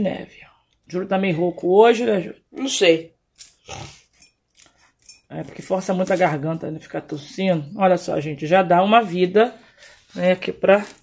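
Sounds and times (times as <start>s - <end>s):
person clearing throat: 3.6s - 4.0s.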